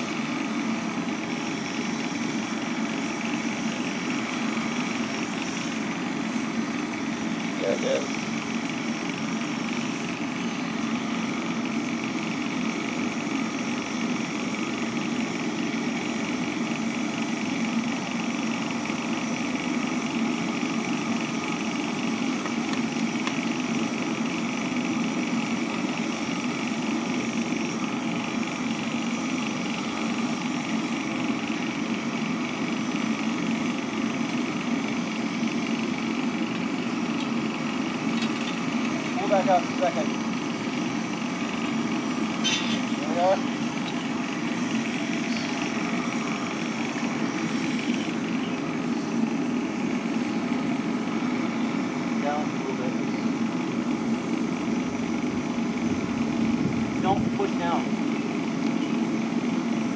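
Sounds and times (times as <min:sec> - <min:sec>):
furnace blower drone: 0:00.0 - 0:59.9.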